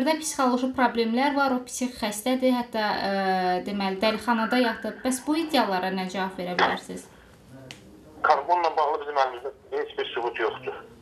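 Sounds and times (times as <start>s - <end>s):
voice over a telephone line: 8.2s - 10.9s.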